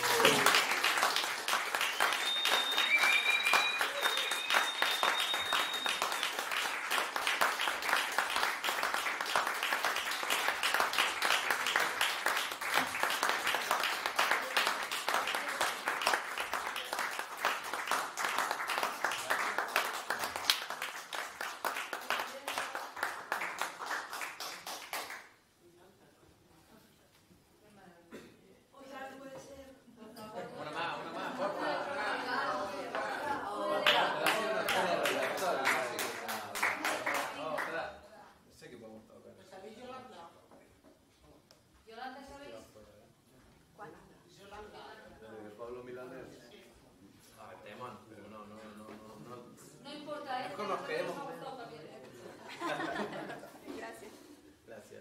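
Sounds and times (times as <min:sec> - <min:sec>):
audience applauding: 0:00.0 - 0:25.4, 0:32.3 - 0:37.8
steady high whistle: 0:01.8 - 0:06.4.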